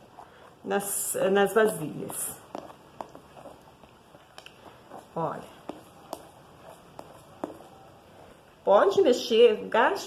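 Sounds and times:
spatula stirring thick paste: 0:00.0 - 0:09.5.

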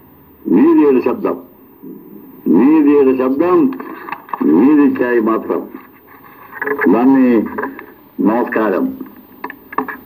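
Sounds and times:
man talking: 0:00.5 - 0:01.5, 0:02.4 - 0:03.8, 0:04.4 - 0:05.8, 0:06.7 - 0:09.1.

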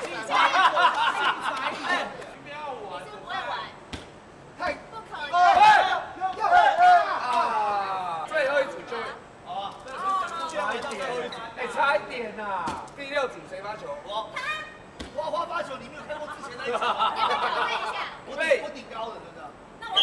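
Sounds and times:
people chattering and exclaiming: 0:00.0 - 0:03.9, 0:04.6 - 0:18.6, 0:19.7 - 0:20.0.

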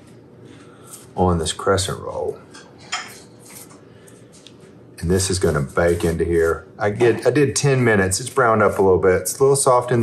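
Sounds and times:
pastry brush strokes on dough: 0:04.6 - 0:10.0.

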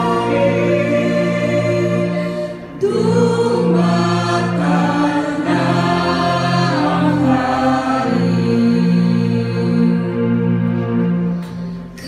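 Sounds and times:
congregation singing a hymn: 0:00.0 - 0:12.0
sustained musical backing: 0:00.0 - 0:12.0.

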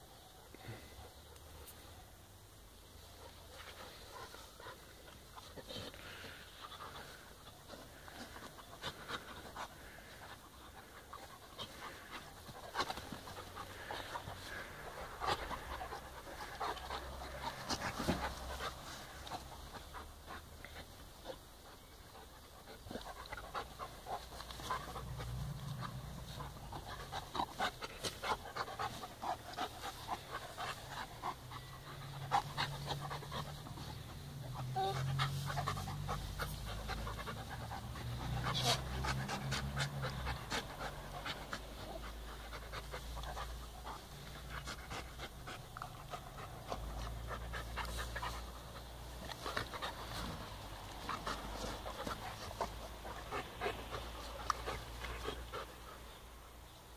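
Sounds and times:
scuffs and rustles: 0:02.8 - 0:56.2
dog panting: 0:03.0 - 0:56.9.

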